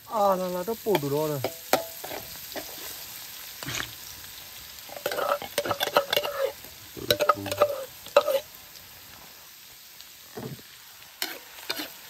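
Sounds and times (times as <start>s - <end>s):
food sizzling in hot oil: 0.0s - 12.0s
metal spatula scraping wok: 0.9s - 4.0s, 4.9s - 8.5s, 11.2s - 12.0s.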